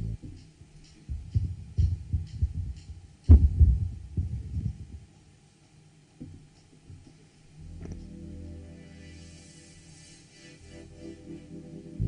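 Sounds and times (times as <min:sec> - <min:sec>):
microphones being bumped: 0:01.0 - 0:05.1.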